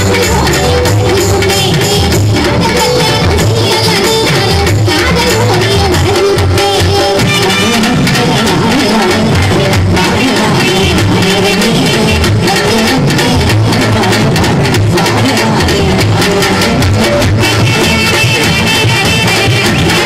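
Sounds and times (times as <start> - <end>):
bass line: 0.0 - 20.0
live band music: 0.0 - 20.0
man singing: 0.0 - 20.0
steady drum beats: 0.0 - 20.0
woman singing: 0.0 - 20.0.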